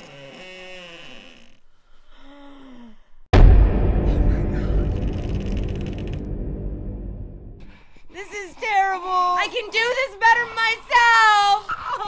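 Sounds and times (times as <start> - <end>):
deep boom with low rumble: 3.3 - 7.7.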